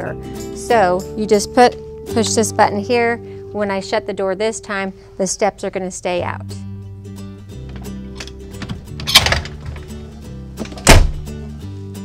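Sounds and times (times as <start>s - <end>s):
background music with held notes: 0.0s - 12.0s
door clatter: 7.6s - 10.0s, 10.6s - 11.2s
heavy door thunk: 8.6s - 9.9s, 10.6s - 11.3s.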